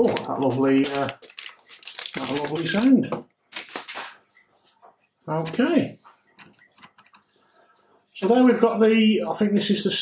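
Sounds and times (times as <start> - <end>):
plastic film crinkling: 0.0 - 4.4.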